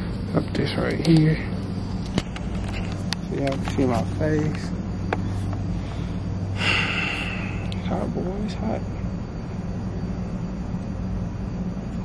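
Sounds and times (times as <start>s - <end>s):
steady low hum: 0.0s - 12.0s
man sighing through face mask: 6.6s - 7.7s.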